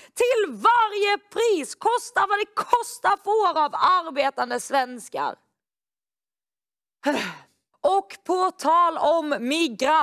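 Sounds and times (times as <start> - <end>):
woman sighing: 7.0 - 7.6.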